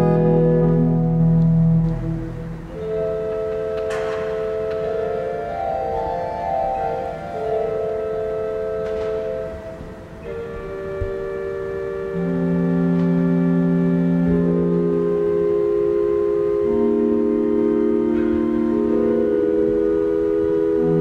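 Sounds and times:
pipe organ sustained chords: 0:00.0 - 0:21.0.

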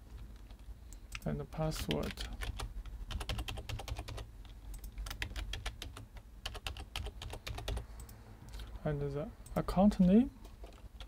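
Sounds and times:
typing on computer keyboard: 0:01.8 - 0:08.1.

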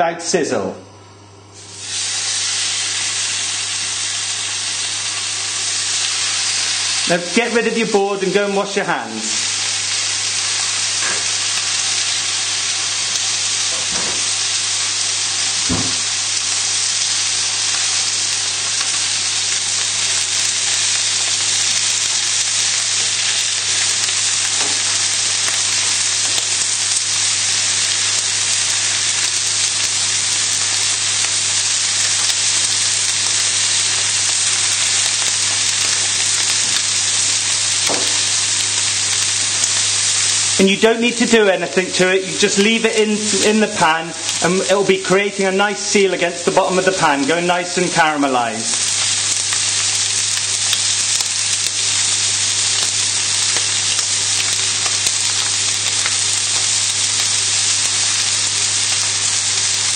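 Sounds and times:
steaks sizzling in a frying pan: 0:01.6 - 0:59.9.

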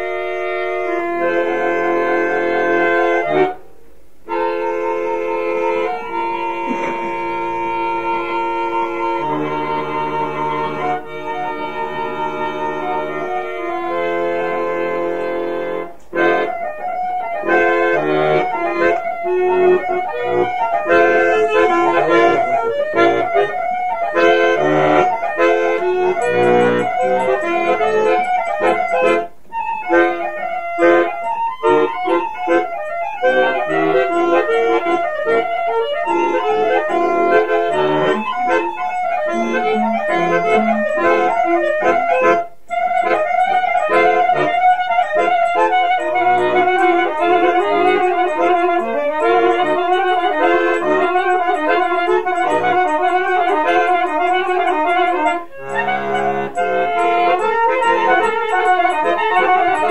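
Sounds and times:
instrumental folk music: 0:00.0 - 0:59.9.

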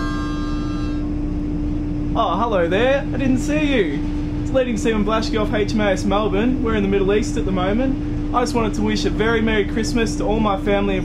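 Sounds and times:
harmonica chord: 0:00.0 - 0:01.8
machinery hum: 0:00.0 - 0:11.0.

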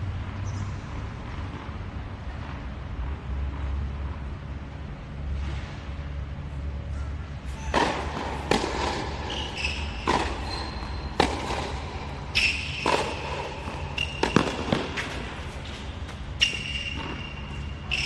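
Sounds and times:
sneakers squeaking on court: 0:07.5 - 0:18.0
tennis ball struck by rackets: 0:07.6 - 0:18.0.

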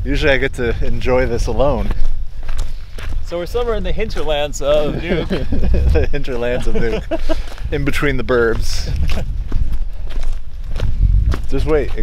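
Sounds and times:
footsteps on rocky ground: 0:00.9 - 0:12.0
low rumble on microphone: 0:04.9 - 0:12.0.

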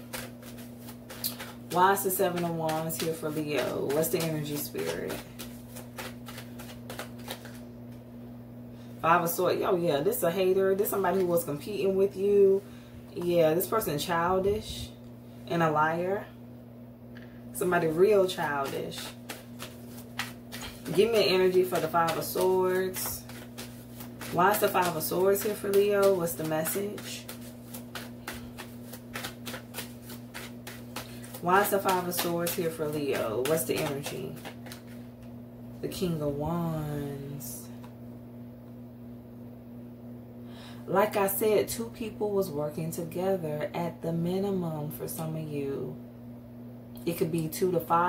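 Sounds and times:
cards being shuffled: 0:00.0 - 0:08.0, 0:17.6 - 0:35.3
low steady hum: 0:00.0 - 0:48.0.

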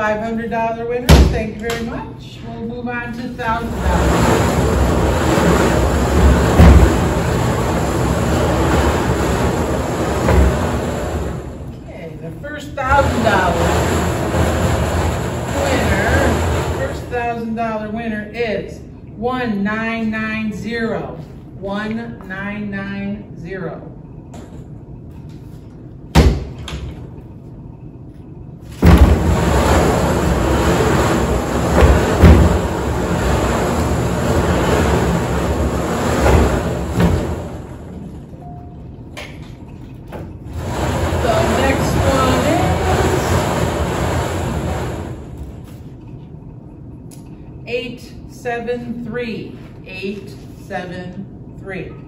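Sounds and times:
tickets tumbling in raffle drum: 0:03.5 - 0:11.6, 0:12.8 - 0:17.4, 0:40.4 - 0:45.6.

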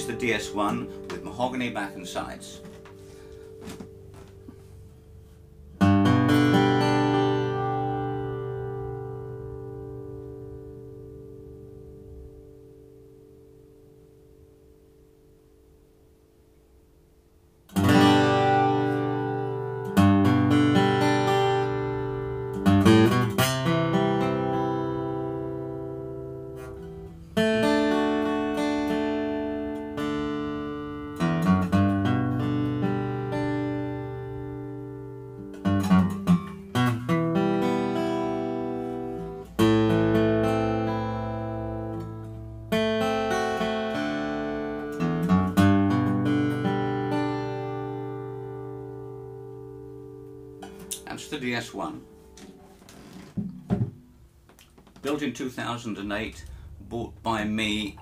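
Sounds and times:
acoustic guitar chords strummed: 0:00.0 - 0:58.0.

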